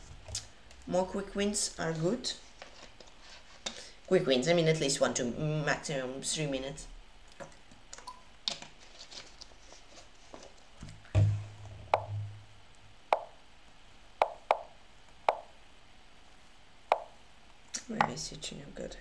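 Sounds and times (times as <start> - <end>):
heavy low thump: 11.2 - 12.5.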